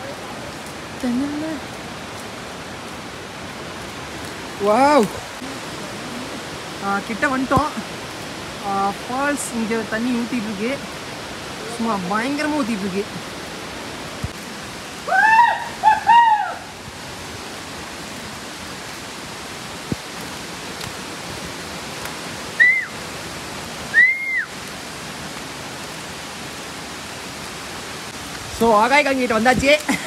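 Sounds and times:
waterfall rushing: 0.0s - 30.0s
short arching high calls: 15.0s - 16.8s, 22.5s - 23.0s, 23.9s - 24.6s.

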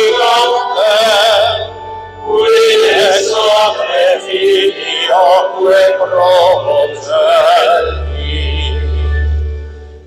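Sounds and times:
person chanting with vibrato: 2.3s - 9.0s.

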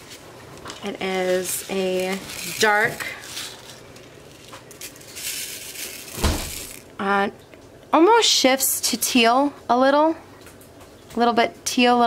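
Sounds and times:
plastic bag crinkling: 0.6s - 7.0s
small beads rattling in tray: 1.0s - 6.9s.

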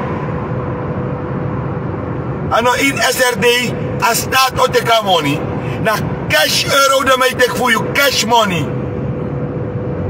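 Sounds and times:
car interior hum and rush: 0.0s - 10.0s.

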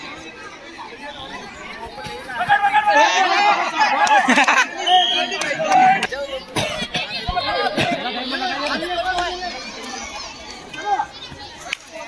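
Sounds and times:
boys shouting and talking: 0.0s - 12.0s.

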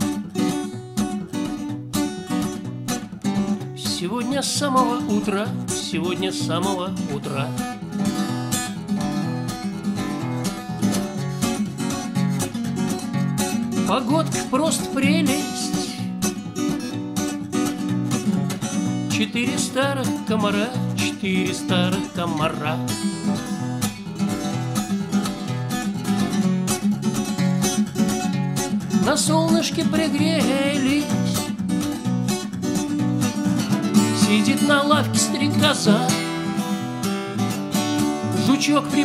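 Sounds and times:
acoustic guitar strumming: 0.0s - 39.0s.

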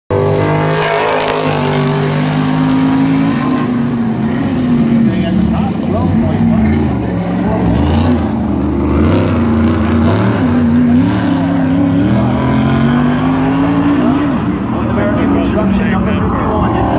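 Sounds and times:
race car engine accelerating: 0.1s - 16.9s.

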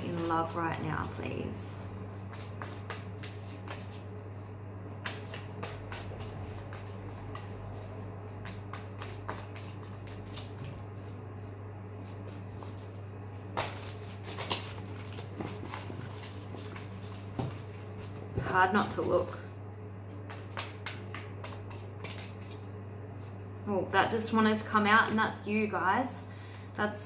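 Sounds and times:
cards being shuffled: 2.1s - 19.4s, 20.1s - 23.4s.

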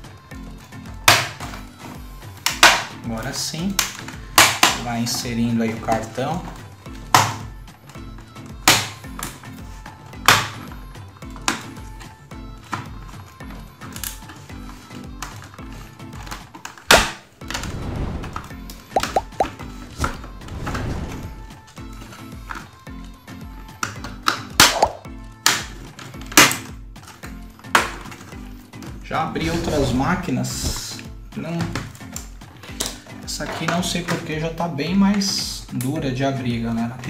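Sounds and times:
background music with steady beat: 0.0s - 37.0s
plastic clips snapping loose: 1.0s - 1.6s, 2.4s - 3.0s, 3.7s - 6.2s, 8.6s - 9.5s, 10.2s - 12.9s, 13.8s - 17.7s, 23.7s - 28.9s, 31.7s - 34.3s.

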